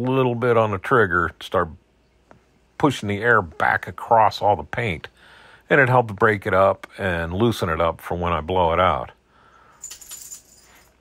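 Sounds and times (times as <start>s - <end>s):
small metal tools clinking: 9.8s - 11.0s.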